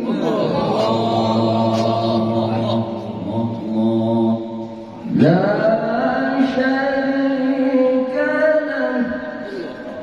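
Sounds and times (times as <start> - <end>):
man reciting melodically through microphone: 0.0 - 10.0.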